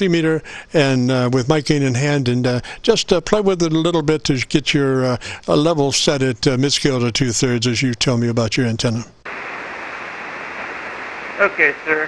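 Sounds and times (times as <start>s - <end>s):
radio static hiss: 9.3s - 12.0s.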